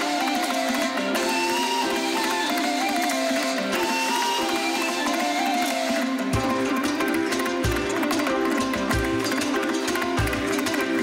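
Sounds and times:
plucked folk strings ensemble: 0.0s - 11.0s.

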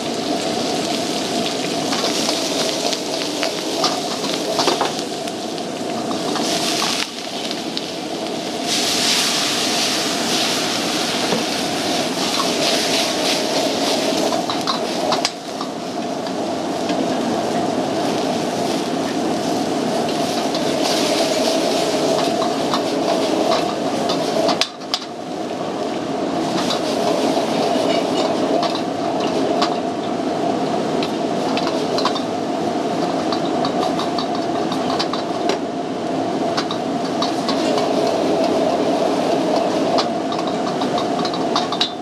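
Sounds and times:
shrimp sizzling in a wok: 0.0s - 25.6s, 26.3s - 28.5s
gas burner roaring: 0.0s - 42.0s.

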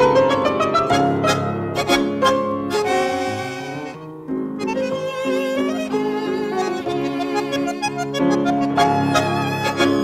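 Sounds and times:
dance orchestra waltz: 0.0s - 10.0s.

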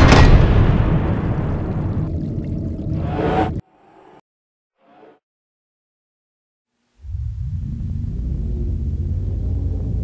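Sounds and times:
deep rumbling boom: 0.0s - 2.3s.

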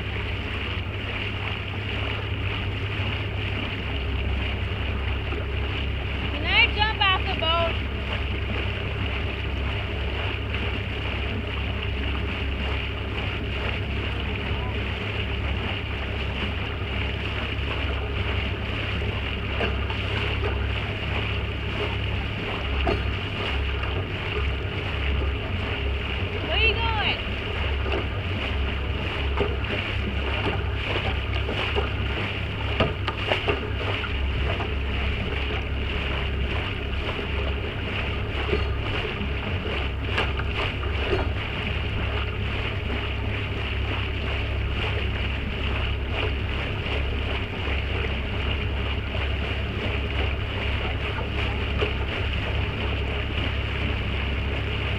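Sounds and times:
water rushing past boat hull: 0.0s - 54.9s.

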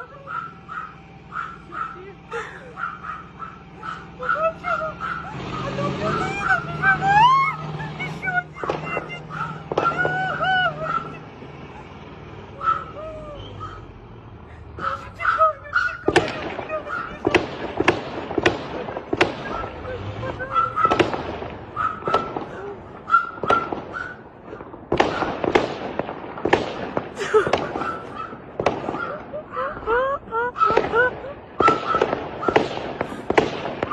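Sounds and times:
rising and falling calls: 0.0s - 14.0s
low hum: 0.0s - 33.9s
gunshots: 4.9s - 12.1s, 16.0s - 29.4s, 30.6s - 33.9s.

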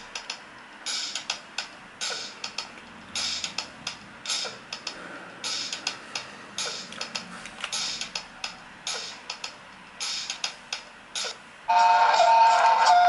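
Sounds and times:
drum machine beat: 0.0s - 13.0s.

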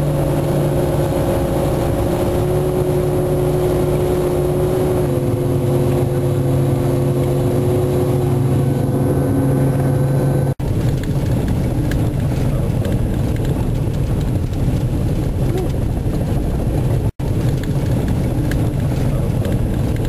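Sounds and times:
snowcat engine drone from inside cabin: 0.0s - 14.3s.

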